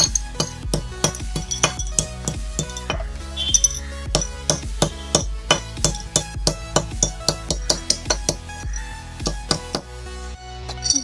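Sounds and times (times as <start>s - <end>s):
hammer striking metal cap on concrete: 0.0s - 8.4s
electronic dance music: 0.0s - 9.8s.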